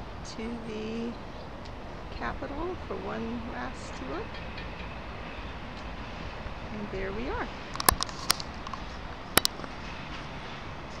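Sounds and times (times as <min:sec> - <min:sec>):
city street noise: 0:00.0 - 0:11.0.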